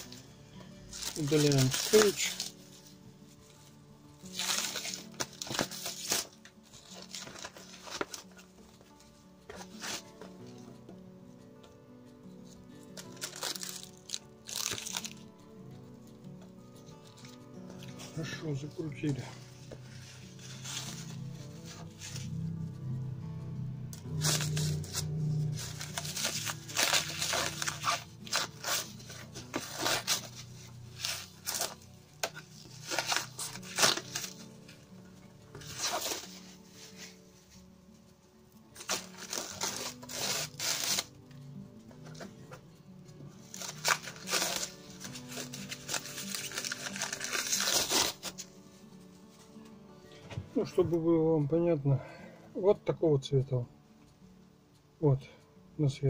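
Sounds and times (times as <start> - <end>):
background music: 0.0 - 56.0
plastic film crinkling and tearing: 0.8 - 3.6, 4.2 - 8.9, 12.7 - 15.4, 16.8 - 22.4, 24.0 - 34.9, 35.5 - 37.2, 38.7 - 41.2, 43.3 - 49.4.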